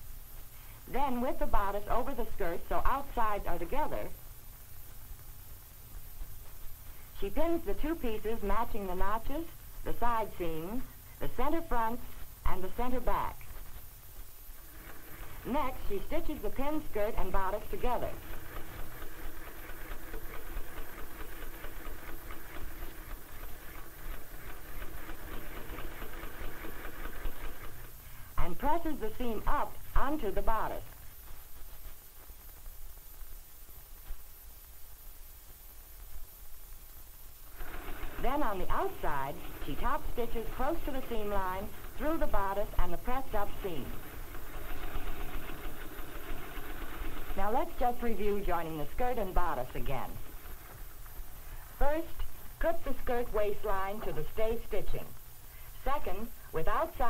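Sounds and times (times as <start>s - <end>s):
sewing machine running: 14.6s - 28.0s, 37.5s - 48.1s, 50.1s - 51.0s.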